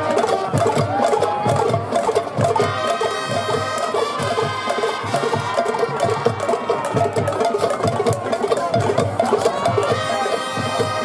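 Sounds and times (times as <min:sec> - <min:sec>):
marching drums: 0:00.0 - 0:11.0
horn and woodwind chords: 0:02.6 - 0:06.6, 0:09.6 - 0:11.0.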